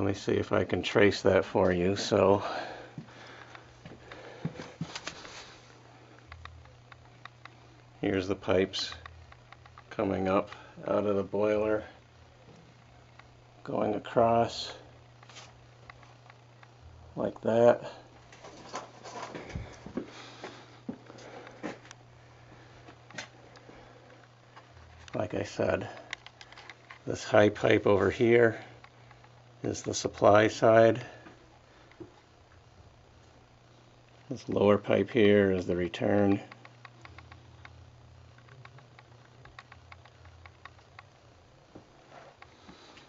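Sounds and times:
steady low hum: 0.0s - 43.0s
faint footsteps: 1.6s - 7.1s, 18.2s - 27.1s.

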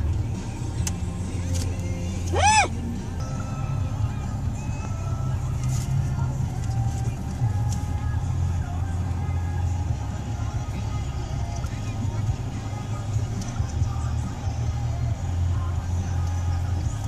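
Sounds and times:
engine and road noise rumble: 0.0s - 17.0s
faint music: 0.0s - 17.0s.

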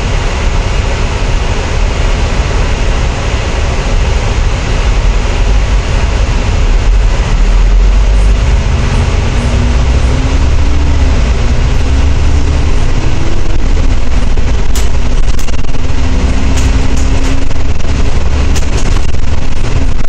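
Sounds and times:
bus pulling away: 0.0s - 20.0s
diesel bus engine idling: 0.0s - 20.0s
faint engine whine rising: 0.0s - 20.0s.

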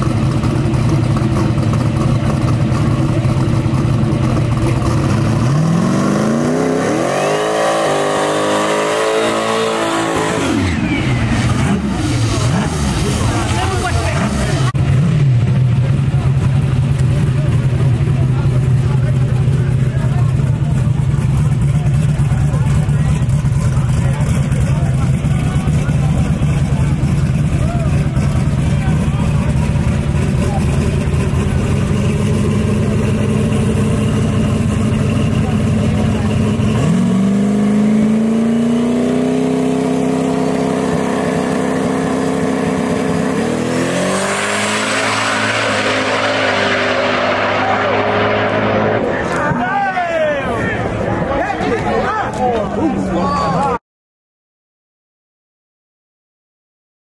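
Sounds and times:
drag car idling: 0.0s - 5.6s, 10.7s - 37.8s
engine revving: 0.0s - 49.6s
car launching at full throttle: 20.2s - 51.0s.

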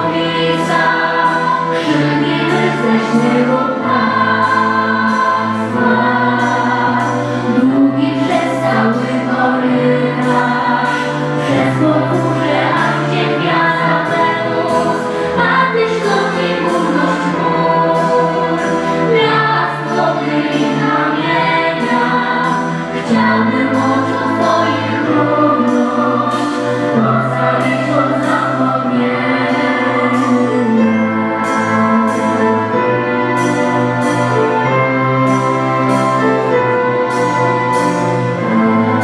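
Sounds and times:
choir singing: 0.0s - 39.0s
orchestra strings: 0.0s - 39.0s
sustained bass notes: 0.0s - 39.0s.

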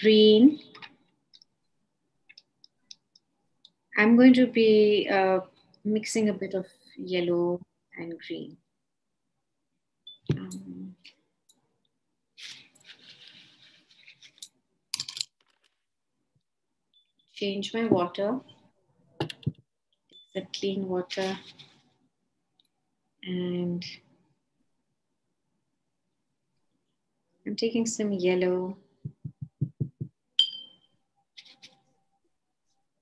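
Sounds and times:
soft scratchy rustle: 12.4s - 14.4s, 21.0s - 22.0s
paintbrush tapping glass jar: 29.0s - 30.8s.

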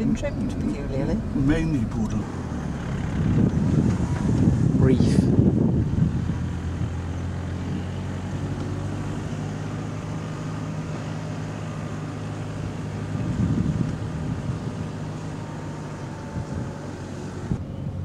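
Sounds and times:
car engine running: 0.0s - 18.0s.

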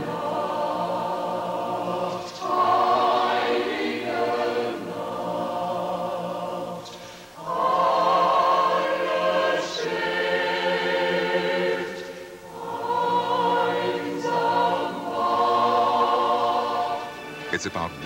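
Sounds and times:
choir singing sustained chords: 0.0s - 18.0s.

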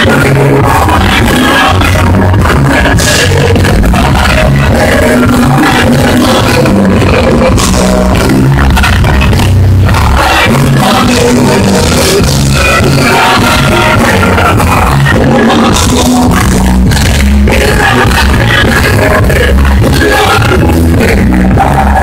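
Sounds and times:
live worship band music: 0.0s - 22.0s
singing: 0.0s - 22.0s.

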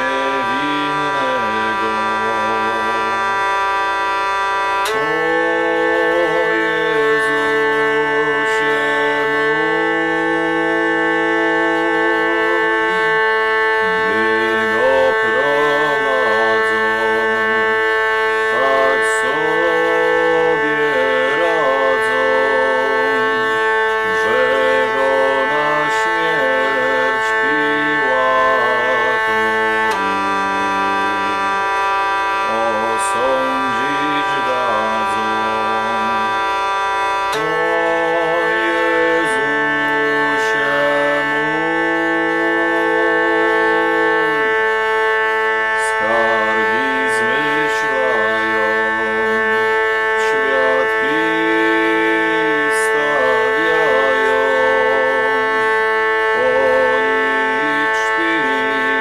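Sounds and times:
hurdy-gurdy drone: 0.0s - 59.0s
hurdy-gurdy melody: 0.0s - 59.0s.

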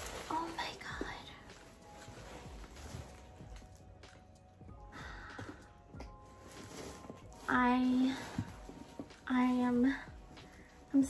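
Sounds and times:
fabric and bubble wrap rustling: 0.0s - 11.0s
faint background music: 0.0s - 11.0s.

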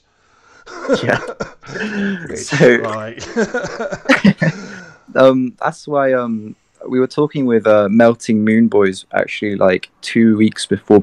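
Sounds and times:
man making throaty vocal noise: 0.7s - 10.9s
man saying yeah: 0.8s - 11.0s.

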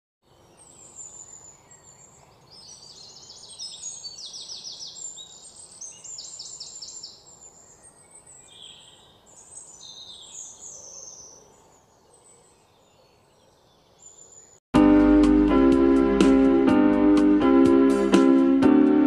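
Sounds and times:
birds chirping and trilling: 0.2s - 14.6s
faint outdoor hiss: 0.2s - 14.6s.

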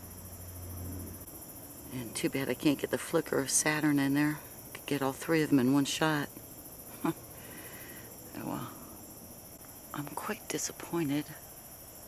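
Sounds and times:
low hum: 0.0s - 2.7s
crickets chirping: 0.0s - 12.0s.

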